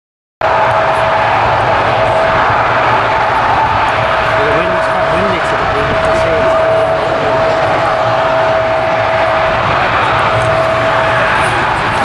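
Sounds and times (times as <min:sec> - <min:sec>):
jet engine roar: 0:00.4 - 0:12.0
wind buffeting microphone: 0:00.7 - 0:12.0.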